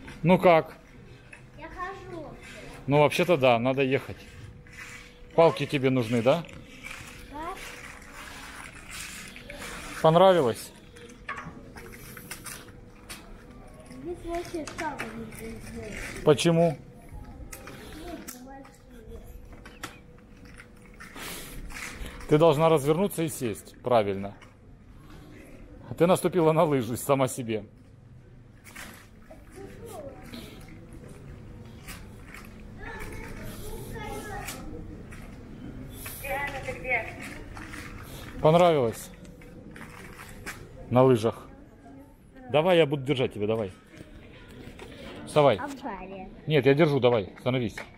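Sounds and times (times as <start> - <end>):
steady background noise: 0.0 - 47.9.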